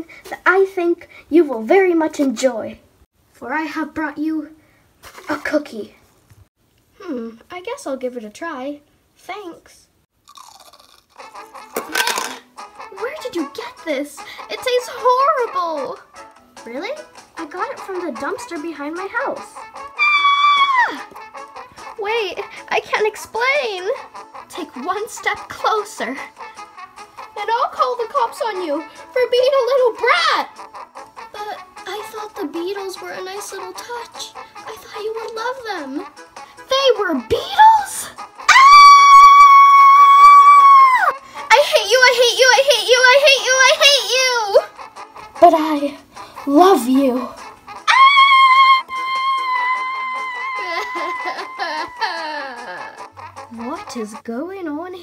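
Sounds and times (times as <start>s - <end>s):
chewing a crunchy cookie: 10.2s - 11.8s
music: 11.1s - 55.0s
child screaming: 19.9s - 21.1s, 37.4s - 41.7s, 47.8s - 52.8s.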